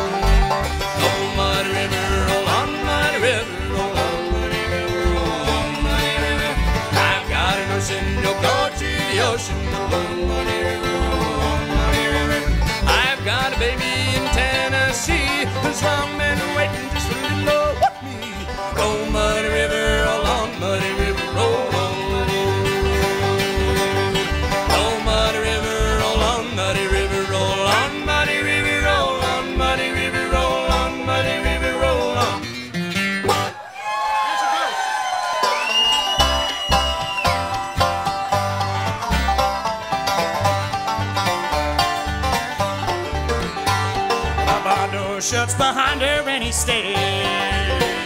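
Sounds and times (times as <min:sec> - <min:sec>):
upright bass pulse: 0:00.0 - 0:33.5, 0:36.2 - 0:48.0
bluegrass string band playing: 0:00.0 - 0:48.0.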